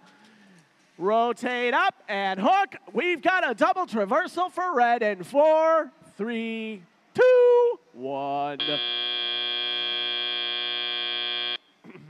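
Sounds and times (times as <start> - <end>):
steady buzzer: 8.6 - 11.6.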